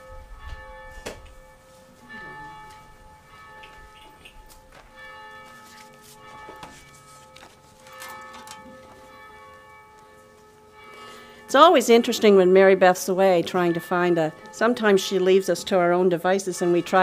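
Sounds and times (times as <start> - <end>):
bells ringing: 0.0 - 17.0.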